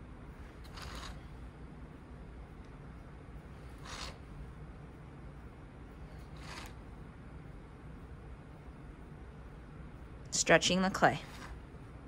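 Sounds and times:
low room noise: 0.0s - 12.0s
fingers rubbing clay pot: 0.6s - 1.3s, 3.7s - 4.2s.

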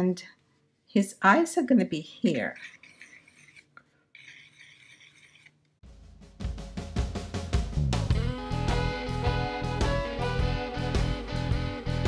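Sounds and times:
pencil scratching on paper: 2.4s - 5.6s
background music with drums and bass: 5.8s - 12.0s.

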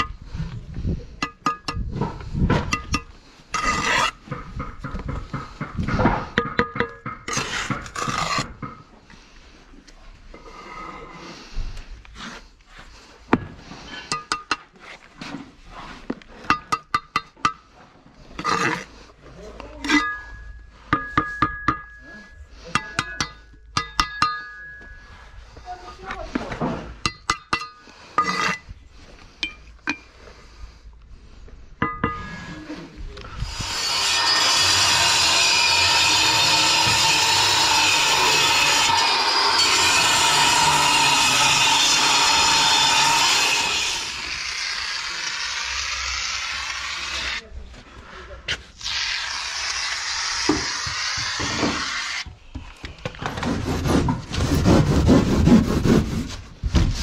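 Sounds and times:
trowel clinking on clay blocks: 19.8s - 25.0s, 27.0s - 28.6s.

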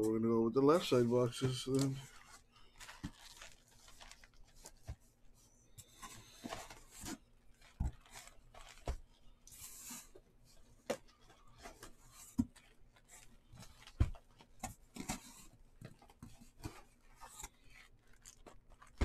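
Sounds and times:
cardboard rustling: 0.7s - 19.0s.

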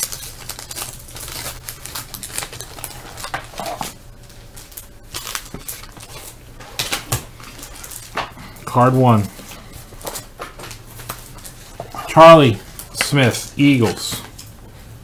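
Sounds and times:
cards rustling and clicking: 0.0s - 14.8s
wax paper wrapper crinkling: 0.0s - 14.9s.

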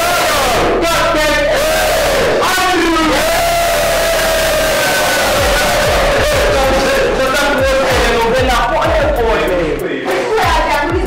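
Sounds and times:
long drawn-out cry: 0.0s - 7.2s
group of voices shouting: 0.0s - 8.8s.

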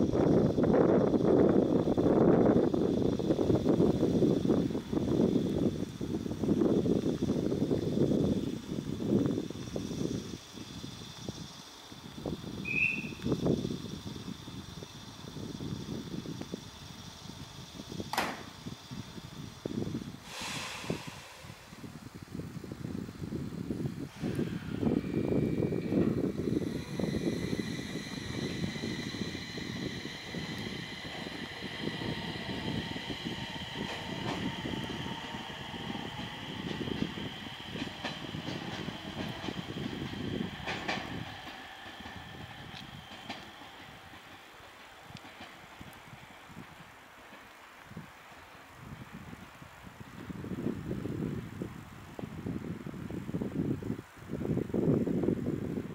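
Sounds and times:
train wheels rumbling: 0.0s - 55.5s
door closing hiss: 17.5s - 22.0s, 24.0s - 46.9s
train door clack: 18.1s - 18.5s, 25.9s - 45.6s.

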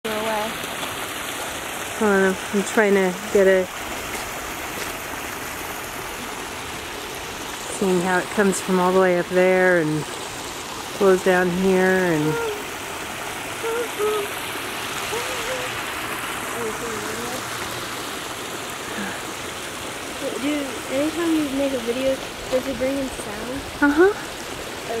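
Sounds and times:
shallow water rushing over rock: 0.0s - 25.0s.

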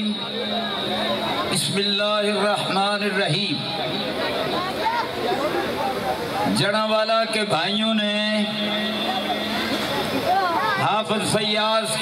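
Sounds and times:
man speaking into a microphone: 0.0s - 4.1s, 6.0s - 9.7s, 10.6s - 12.0s
noisy background sound: 0.0s - 12.0s.

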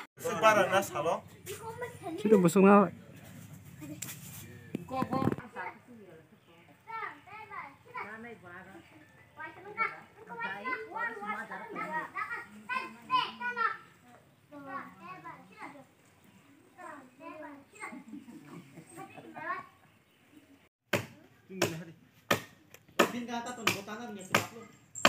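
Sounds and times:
children talking and calling out: 0.4s - 2.8s, 6.8s - 20.7s.

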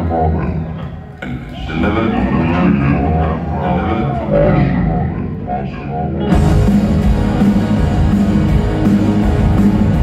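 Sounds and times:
distant live rock band: 0.0s - 10.0s.

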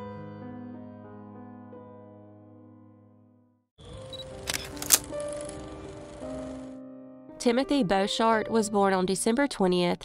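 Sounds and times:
background music with held tones: 0.0s - 10.0s.

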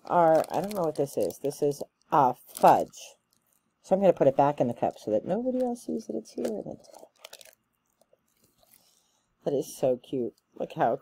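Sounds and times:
plastic packaging crinkling: 0.0s - 3.8s, 4.7s - 9.0s.

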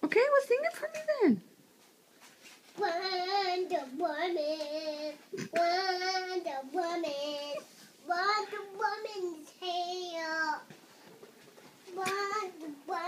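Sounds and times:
young girl singing: 2.7s - 10.8s, 11.8s - 13.0s.

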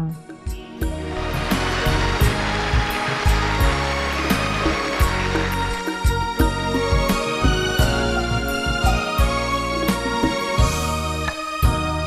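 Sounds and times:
music with steady beat: 0.0s - 12.0s
audience applauding: 1.0s - 9.2s.

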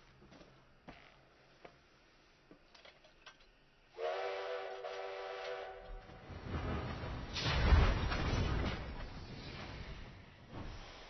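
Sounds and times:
steam locomotive whistle: 4.0s - 6.1s.

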